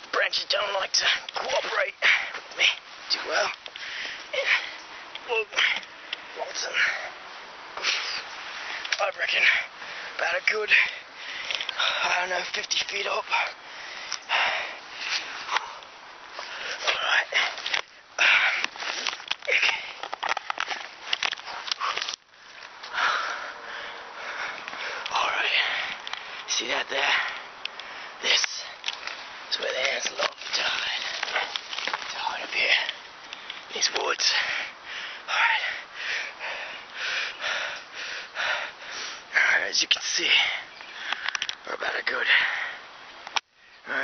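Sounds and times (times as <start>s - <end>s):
rustling of clothing and branches: 0.0s - 44.0s
man breathing hard: 2.0s - 7.2s, 7.8s - 12.2s, 13.3s - 20.8s, 21.4s - 28.8s, 32.2s - 41.4s, 42.2s - 44.0s.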